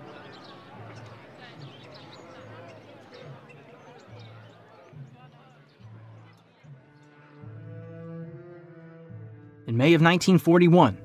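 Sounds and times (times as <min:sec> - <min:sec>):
faint indistinct voices: 0:00.0 - 0:07.9.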